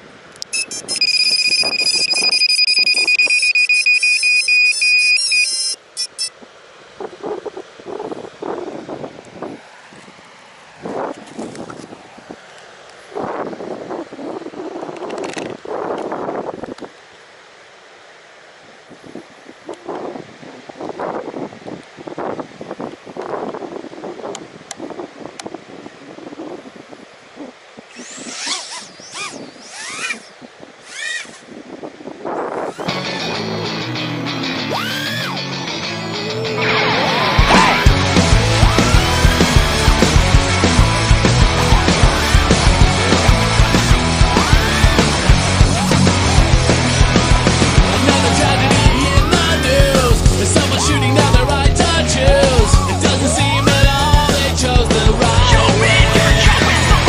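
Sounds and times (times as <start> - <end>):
loud pulsing beep: 0.5 - 6.3
drone motor whine: 27.9 - 31.4, 34.1 - 54.8.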